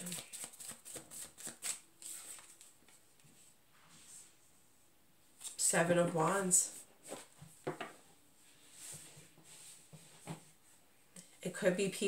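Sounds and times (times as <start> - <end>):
cards being shuffled: 0.0 - 3.0.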